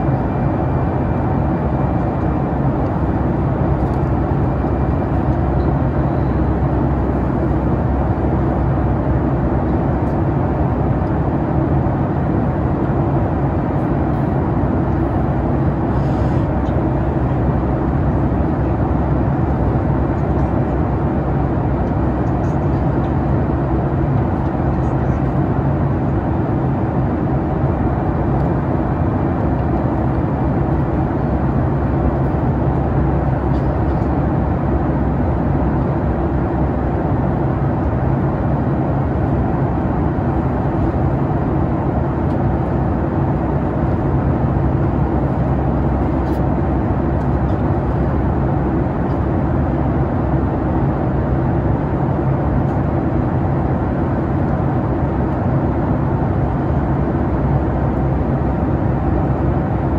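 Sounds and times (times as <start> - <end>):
jet engine hum: 0.0 - 59.9.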